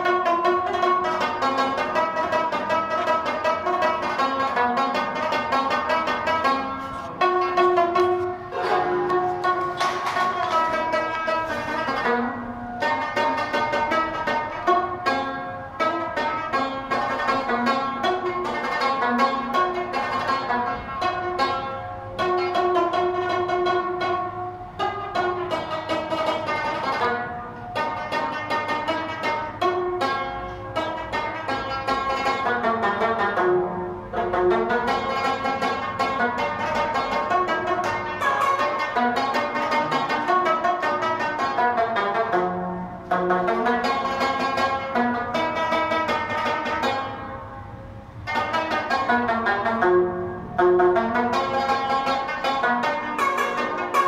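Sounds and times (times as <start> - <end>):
plucked lute solo: 0.0 - 54.0.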